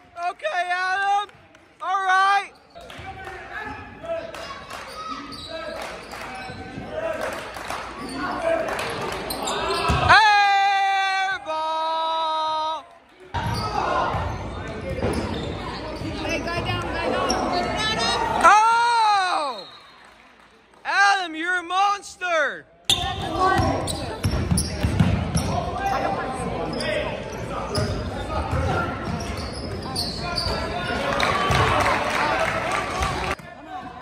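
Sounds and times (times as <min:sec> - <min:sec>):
shouts and chatter: 0:15.8 - 0:19.9.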